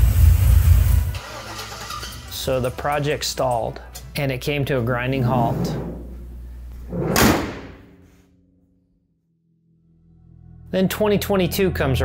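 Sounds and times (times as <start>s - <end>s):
steel truck hood slammed shut: 7.0s - 7.8s.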